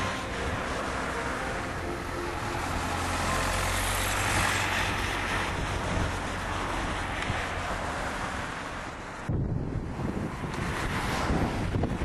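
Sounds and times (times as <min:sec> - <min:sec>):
tyre and road noise: 0:00.0 - 0:12.0.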